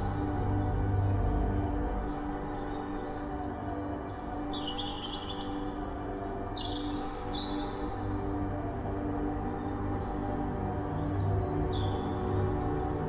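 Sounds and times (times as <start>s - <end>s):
slow ambient music: 0.0s - 13.0s.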